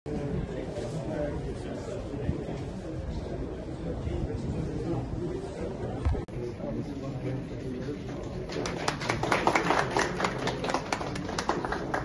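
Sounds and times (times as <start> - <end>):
small group applauding: 8.1 - 12.0.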